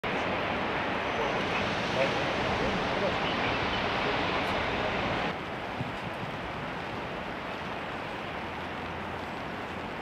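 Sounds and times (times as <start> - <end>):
street noise rumble and hiss: 0.0 - 10.0.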